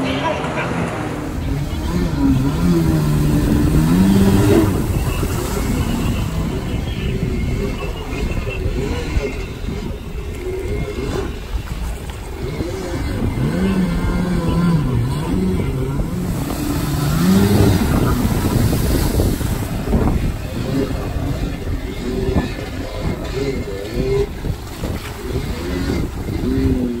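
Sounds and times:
jet ski engine revving: 0.0 - 27.0
water rushing and splashing: 0.0 - 27.0.

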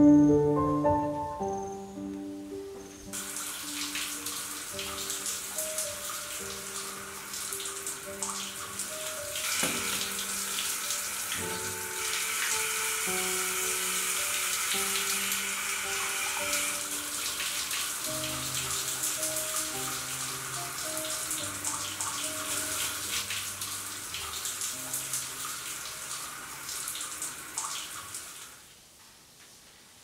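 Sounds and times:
slow dark background music: 0.0 - 27.3
shower water spraying: 3.1 - 28.6.

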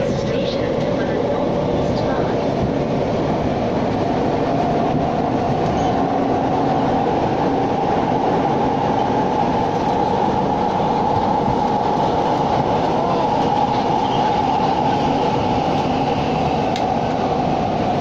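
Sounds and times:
train wheels rumbling: 0.0 - 18.0.

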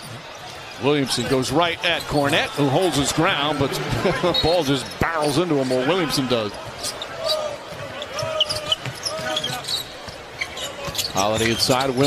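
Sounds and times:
faint voices: 0.8 - 11.8
crowd murmur: 1.3 - 11.0
sneaker squeaks: 6.5 - 12.0.

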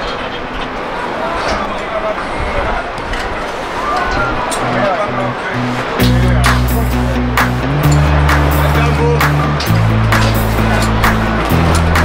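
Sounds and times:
voices calling out: 3.5 - 12.0
steady rushing noise: 4.7 - 12.0
music with steady beat: 5.2 - 12.0.

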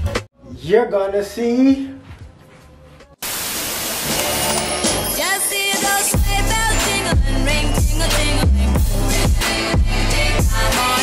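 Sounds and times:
hissing tv static: 3.2 - 4.6.

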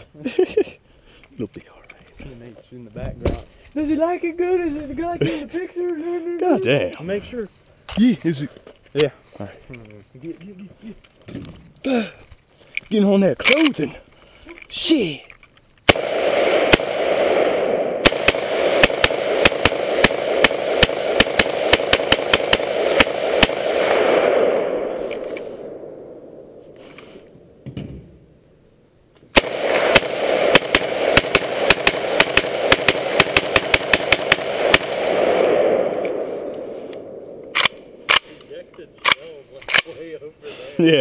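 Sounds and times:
rifle firing rapid shots: 15.9 - 25.7, 29.4 - 38.4
trailing rumble: 16.0 - 28.4, 29.4 - 39.0.

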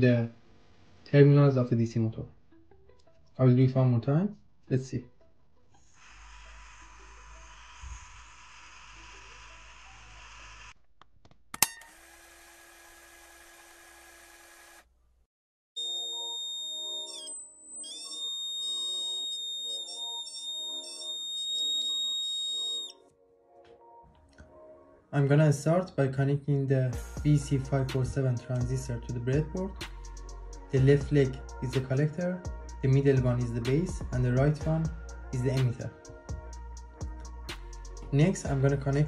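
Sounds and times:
small motor propeller whirring: 11.8 - 14.9
piezo buzzer high-pitched tone: 15.8 - 23.0.

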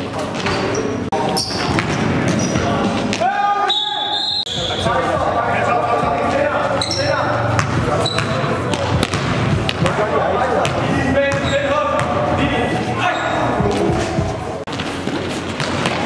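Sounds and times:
sneaker squeaks: 0.0 - 5.0, 6.7 - 9.2, 10.6 - 12.2, 13.0 - 16.0
voices echoing in hall: 0.0 - 16.0.

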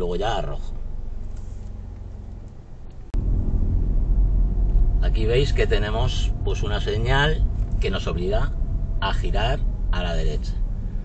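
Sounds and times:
car interior rumble: 0.0 - 11.0
loud engine and road rumble: 0.0 - 11.0.

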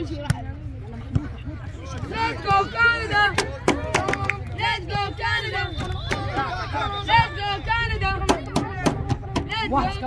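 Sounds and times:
people shouting and calling: 1.3 - 10.0.

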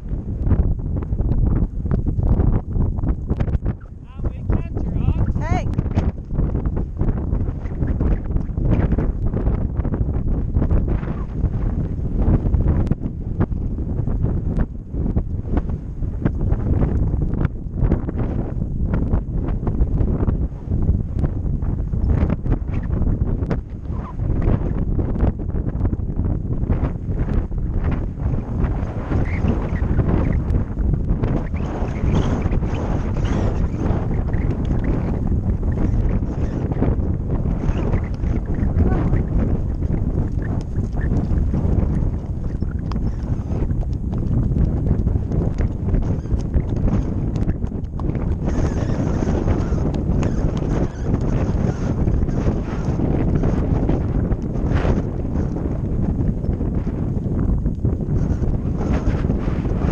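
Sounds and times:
wind buffeting microphone: 0.0 - 59.9
horse hoofbeats on grass: 36.9 - 58.0.

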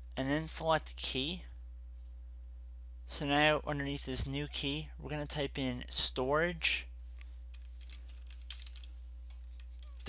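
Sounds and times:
steady low hum: 0.0 - 10.0
keyboard keystrokes: 7.8 - 10.0.

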